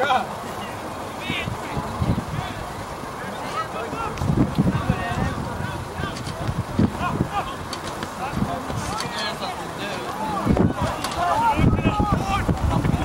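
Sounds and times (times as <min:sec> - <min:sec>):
distant players shouting: 0:00.0 - 0:13.0
wind buffeting microphone: 0:01.2 - 0:13.0.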